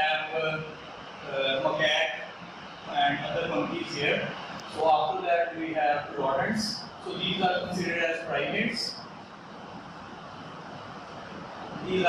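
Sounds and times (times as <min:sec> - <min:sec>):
room hum and hiss: 0:00.0 - 0:12.0
man's voice: 0:02.9 - 0:09.0.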